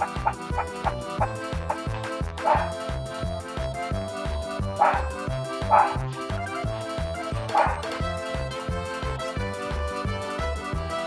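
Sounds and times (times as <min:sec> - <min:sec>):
music with bass beat: 0:00.0 - 0:11.0.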